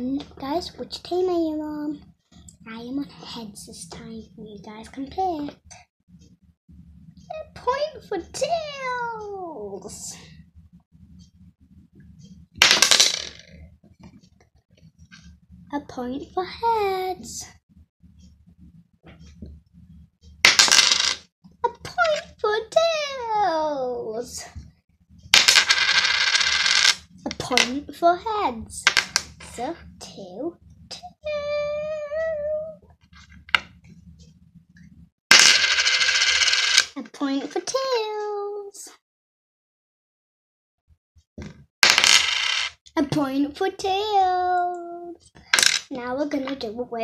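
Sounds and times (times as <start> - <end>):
coin rattling on hard surface: 12.6 - 13.5, 20.5 - 21.2, 25.4 - 27.6, 35.3 - 37.0, 41.8 - 42.8, 45.5 - 45.9.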